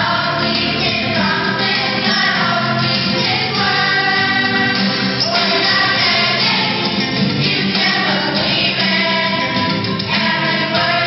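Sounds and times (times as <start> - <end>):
children singing into microphones: 0.0 - 11.0
instrumental accompaniment: 0.0 - 11.0.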